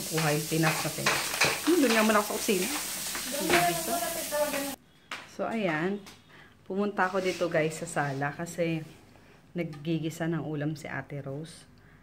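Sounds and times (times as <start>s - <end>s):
curry sizzling in a pan: 0.0s - 4.8s.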